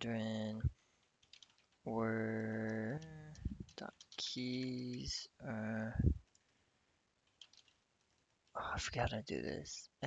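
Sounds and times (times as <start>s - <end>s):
keyboard keystroke clicks: 7.3s - 7.8s.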